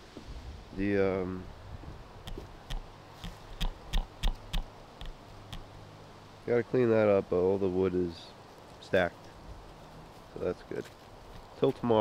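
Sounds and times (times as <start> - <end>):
footsteps on dry grass and leaves: 2.3 - 4.1, 8.5 - 12.0.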